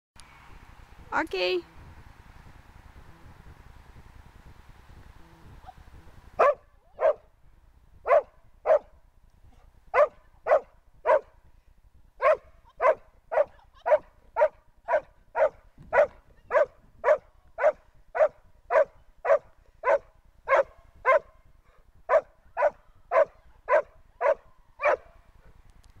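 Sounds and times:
dog barking: 0:06.4 - 0:07.3, 0:08.0 - 0:09.0, 0:09.9 - 0:11.4, 0:12.2 - 0:25.2.

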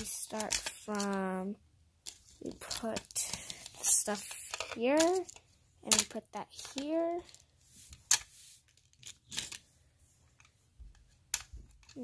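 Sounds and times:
plastic toy pieces clicking: 0:00.0 - 0:01.2, 0:02.7 - 0:07.4.

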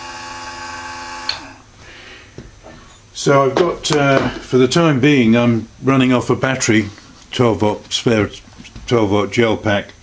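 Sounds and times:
small motor whining: 0:00.0 - 0:01.6.

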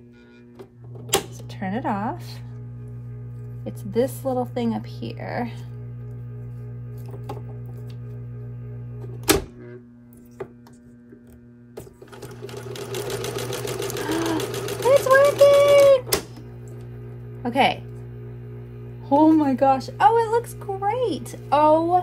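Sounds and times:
sewing machine motor humming: 0:11.8 - 0:17.8
sewing needle chatter: 0:12.1 - 0:16.0.

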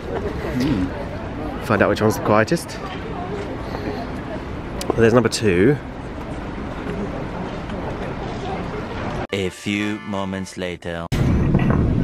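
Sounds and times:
outdoor background noise: 0:00.0 - 0:09.3, 0:10.8 - 0:12.0
faint indistinct voices: 0:00.0 - 0:09.5.

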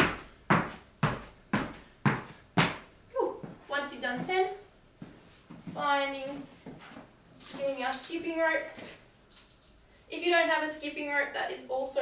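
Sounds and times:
feet landing on rubber floor: 0:00.0 - 0:04.4.

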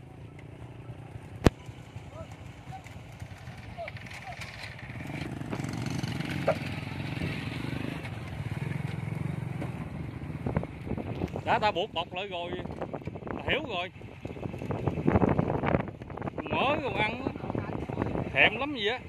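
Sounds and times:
small motorcycle engine running: 0:00.1 - 0:10.5.

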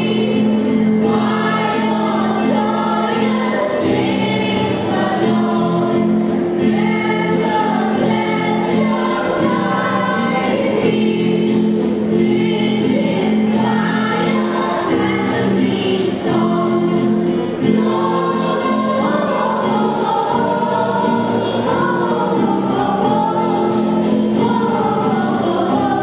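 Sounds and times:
musical backing: 0:00.0 - 0:26.0
young choir singing: 0:00.0 - 0:26.0.

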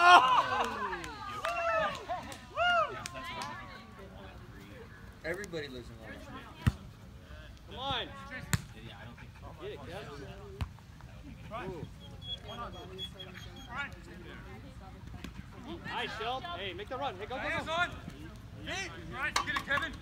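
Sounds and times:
players shouting: 0:00.0 - 0:04.1
soccer ball kicks: 0:06.6 - 0:06.8, 0:08.4 - 0:08.7.

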